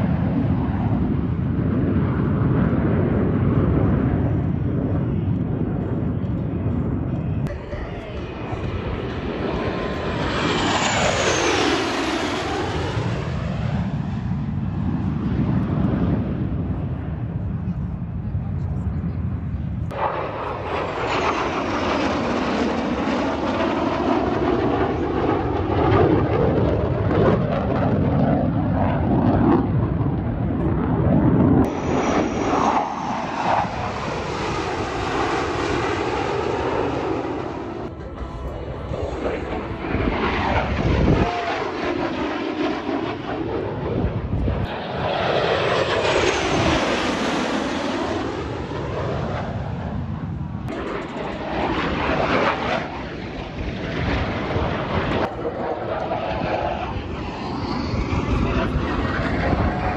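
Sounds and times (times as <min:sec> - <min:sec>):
fighter jets passing low: 0:00.0 - 0:59.9.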